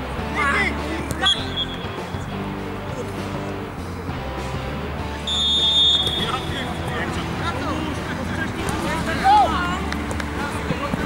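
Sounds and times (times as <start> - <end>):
background music: 0.0 - 11.0
referee's whistle blast: 1.2 - 2.2, 5.2 - 6.7.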